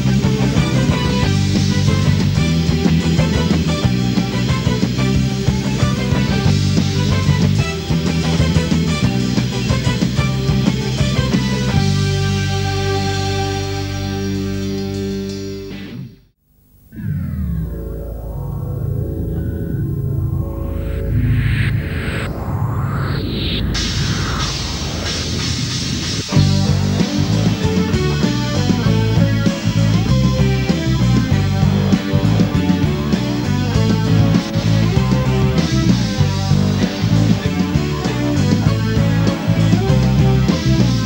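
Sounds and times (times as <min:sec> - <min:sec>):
rock band with electric guitars: 0:00.0 - 0:16.3, 0:17.0 - 0:41.0
low sustained bass: 0:17.0 - 0:22.8
swooping sweeping sounds: 0:17.0 - 0:27.4.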